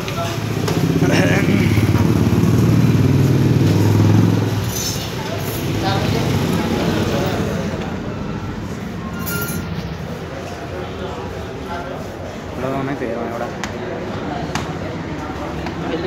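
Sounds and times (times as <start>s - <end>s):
voices: 0.0s - 16.0s.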